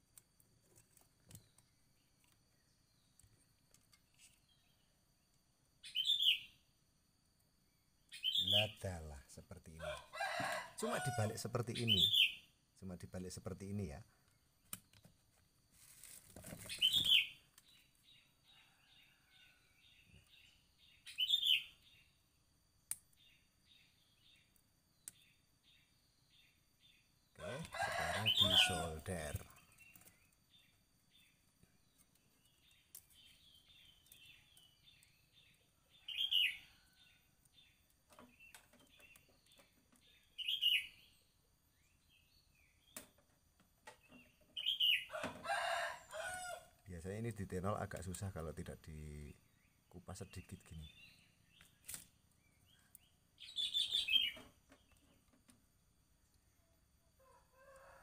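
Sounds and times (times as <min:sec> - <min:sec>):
chickens and birds calling: 0:05.8 - 0:06.6, 0:08.1 - 0:09.1, 0:09.7 - 0:12.6, 0:15.8 - 0:22.1, 0:27.0 - 0:31.4, 0:32.0 - 0:41.2, 0:42.4 - 0:47.3, 0:50.4 - 0:55.5, 0:56.4 - 0:58.0.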